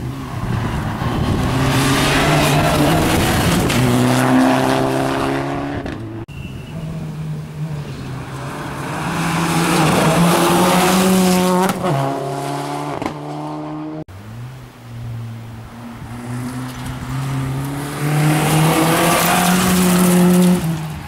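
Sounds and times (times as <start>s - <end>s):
rally car engine at full throttle: 0.0s - 21.0s
rally car passing by: 0.2s - 6.0s, 6.8s - 21.0s.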